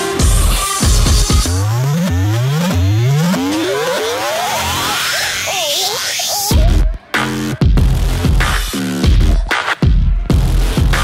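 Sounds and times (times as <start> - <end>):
dubstep electronic music: 0.0 - 11.0
revving synth rising in pitch: 0.8 - 7.5.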